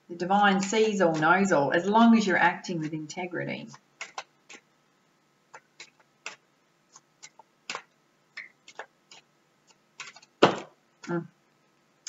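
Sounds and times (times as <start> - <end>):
cards being shuffled: 3.7 - 4.7, 5.5 - 11.2.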